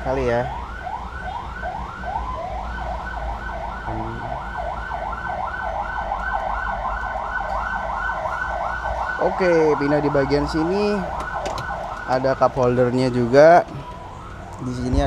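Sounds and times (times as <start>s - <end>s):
siren yelp wail: 0.0s - 15.0s.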